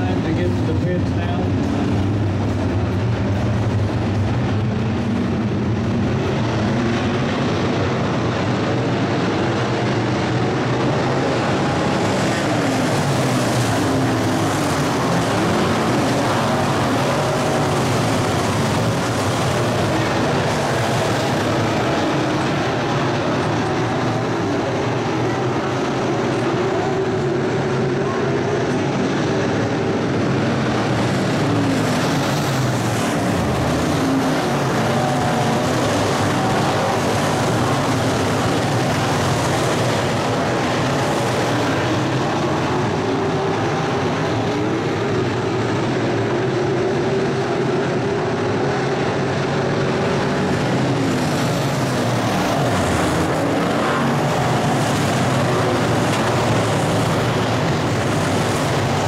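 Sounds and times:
race car engines passing: 0.0s - 59.0s.

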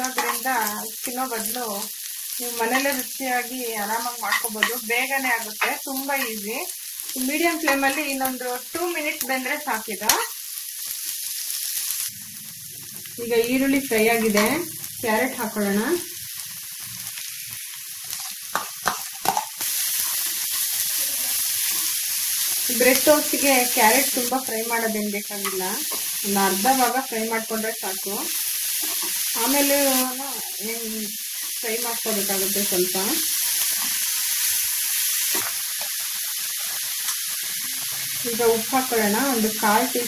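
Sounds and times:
food sizzling in a frying pan: 0.0s - 40.0s.

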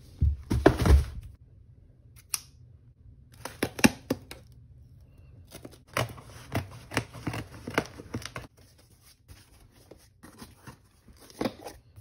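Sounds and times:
box thumping on wooden floor: 0.2s - 1.3s.

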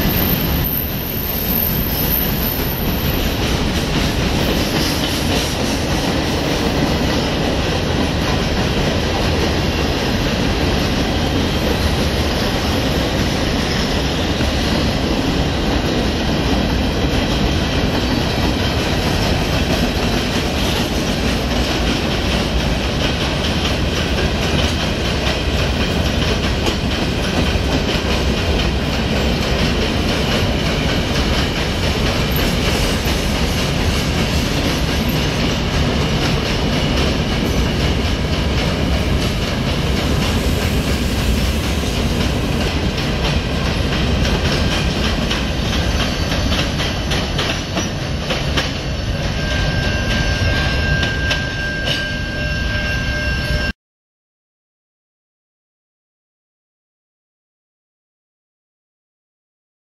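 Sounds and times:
freight train wheels on rails: 0.0s - 53.6s.

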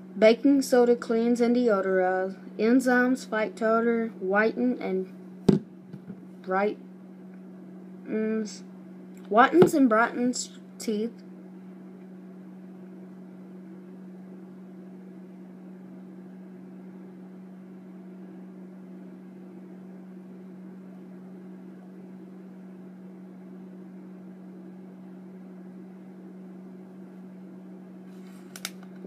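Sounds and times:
low mechanical hum: 0.0s - 29.0s.

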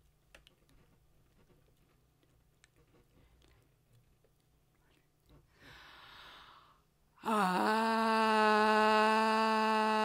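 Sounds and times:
woman breathing: 5.4s - 8.4s
woman singing long tone: 7.2s - 10.0s.

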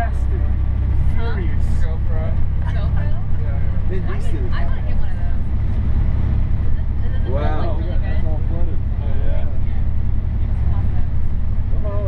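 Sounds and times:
bus engine rumble: 0.0s - 12.0s
faint passengers' voices: 0.0s - 12.0s
road noise: 0.0s - 12.0s.

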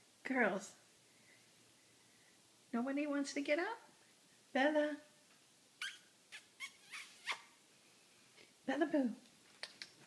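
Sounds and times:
dog whining: 5.8s - 7.6s.

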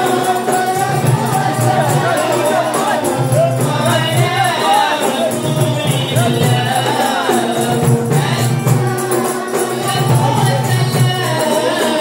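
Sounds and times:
frame drums with jingles: 0.0s - 12.0s
men chanting in unison: 0.0s - 12.0s.

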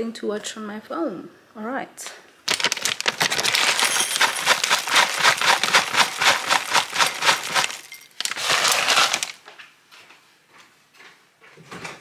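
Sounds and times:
granola poured into ceramic bowl: 2.5s - 9.4s.

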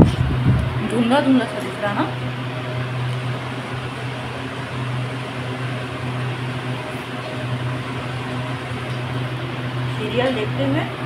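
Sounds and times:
air cooler and fan humming: 0.0s - 11.0s.

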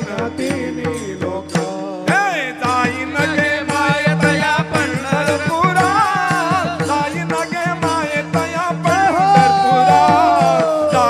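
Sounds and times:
drum beating: 0.0s - 11.0s
hand cymbals: 0.0s - 11.0s
men singing devotional song: 0.0s - 11.0s.

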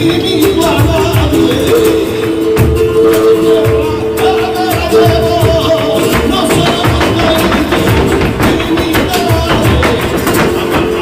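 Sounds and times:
guitars playing: 0.0s - 11.0s
rapid dance footwork taps: 0.0s - 11.0s.

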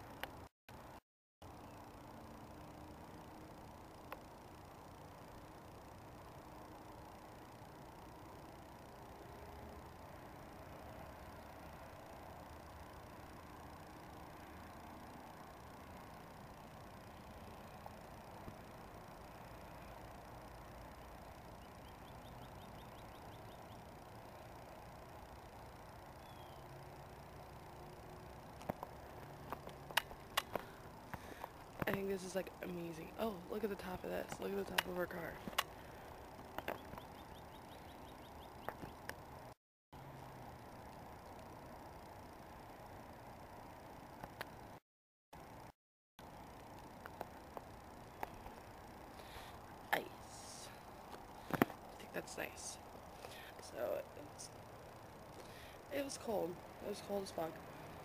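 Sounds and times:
faint outdoor background noise: 0.0s - 58.0s.

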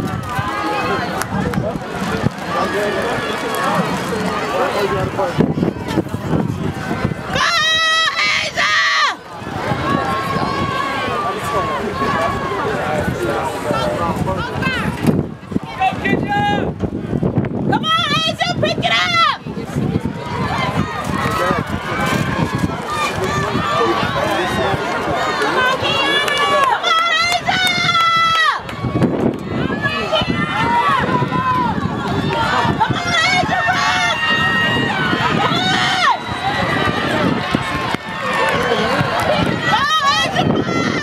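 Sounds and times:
spectators yelling and cheering: 0.0s - 41.0s.

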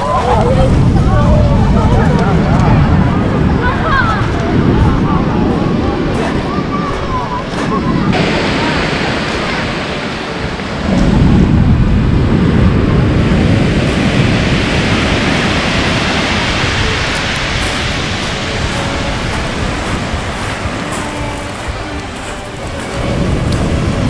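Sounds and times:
wave breaking: 0.0s - 24.0s
water washing over pebbles: 13.2s - 24.0s.

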